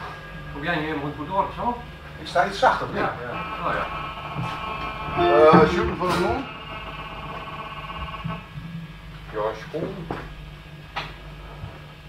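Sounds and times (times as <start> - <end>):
guitar amplifier hum: 0.0 - 12.0
faint held tone: 3.4 - 6.8.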